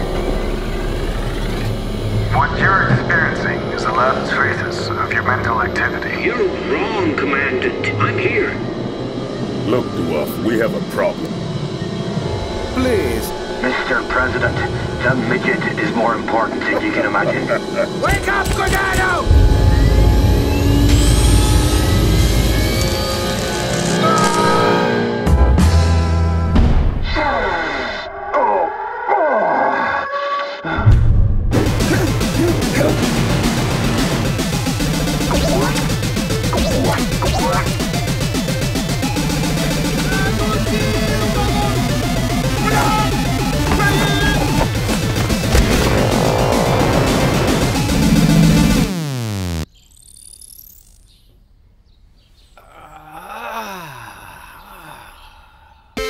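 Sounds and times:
soundtrack music: 0.0 - 27.1, 30.5 - 49.7
man groaning: 31.8 - 33.1, 52.6 - 56.0
man howling: 40.0 - 44.6, 52.6 - 55.7.

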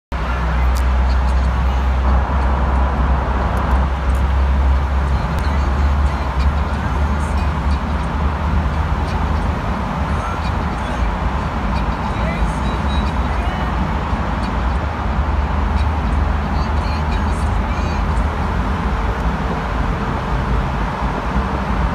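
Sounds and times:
car road and engine rumble: 0.1 - 21.9.

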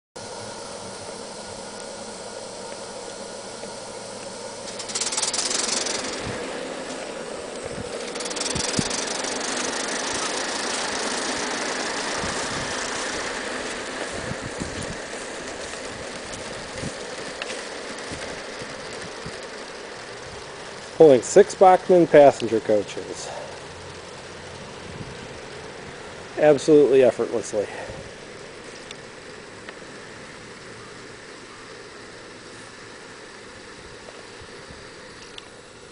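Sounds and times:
steam locomotive hissing: 0.2 - 35.9
light rattle: 4.6 - 25.7.

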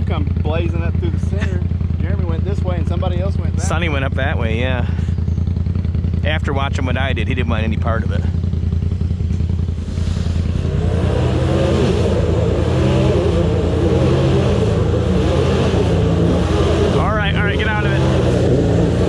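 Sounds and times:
engine revving under load: 0.0 - 19.0.

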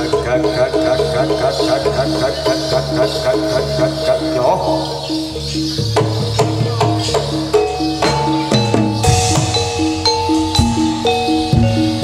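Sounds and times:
gamelan music: 0.0 - 12.0.

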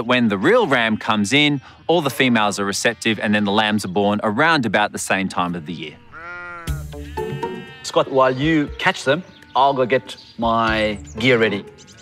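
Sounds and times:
sheep bleating: 0.6 - 3.5, 5.8 - 8.4.

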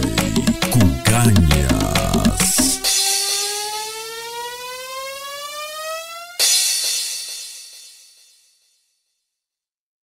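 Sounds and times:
rising siren-like electronic tone: 0.0 - 6.4.

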